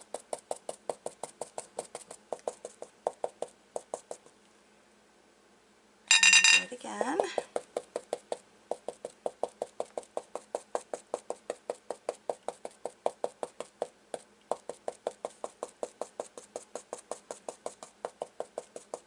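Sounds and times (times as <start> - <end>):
stencil brush tapping: 0.0 - 4.3, 7.0 - 19.0.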